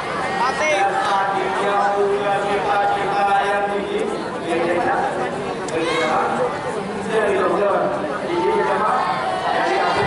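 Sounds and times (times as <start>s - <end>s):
crowd chatter: 0.0s - 10.0s
man talking into microphone: 0.5s - 10.0s.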